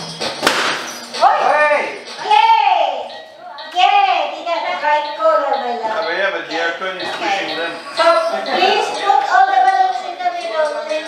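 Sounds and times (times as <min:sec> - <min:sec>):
sharp bang: 0:00.4 - 0:01.0.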